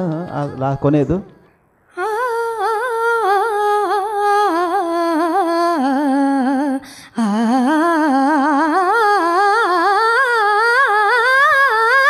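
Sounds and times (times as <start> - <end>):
girl singing unaccompanied: 0.0 - 1.3, 2.0 - 12.0.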